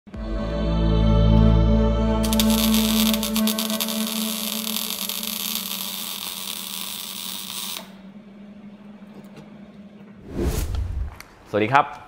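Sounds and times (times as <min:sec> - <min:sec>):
sizzling sparks hiss: 0:02.2 - 0:07.9.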